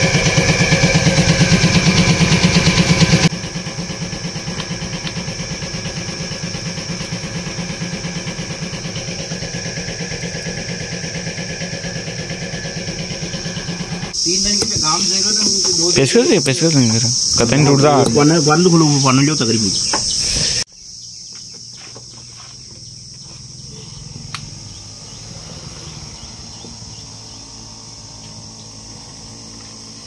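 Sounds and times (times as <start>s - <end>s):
engine idling: 0.0s - 20.7s, 21.3s - 30.0s.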